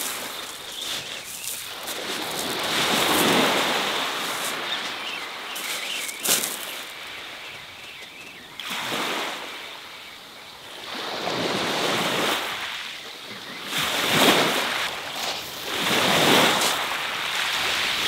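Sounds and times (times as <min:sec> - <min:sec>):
waves washing up shingle beach: 0:00.0 - 0:18.0.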